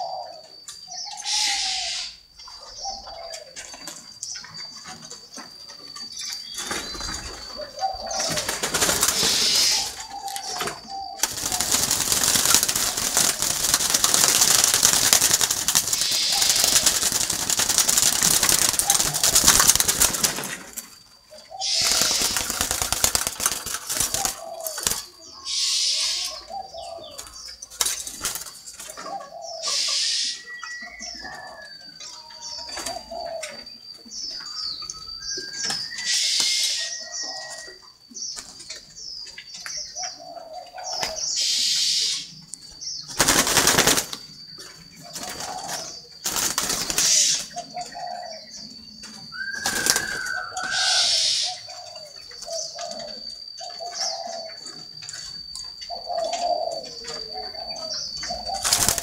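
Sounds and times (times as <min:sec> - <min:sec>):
doves cooing: 0:00.0 - 0:59.0
faint high chirps: 0:00.0 - 0:59.0
wings flapping and rustling: 0:06.6 - 0:21.0, 0:21.6 - 0:25.2, 0:27.2 - 0:29.1, 0:43.1 - 0:44.4, 0:45.0 - 0:47.5, 0:49.3 - 0:51.0, 0:58.4 - 0:59.0.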